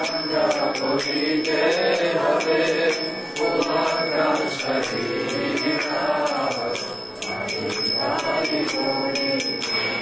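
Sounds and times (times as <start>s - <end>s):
small hand cymbals ringing: 0.0s - 10.0s
voices chanting a mantra: 0.0s - 10.0s.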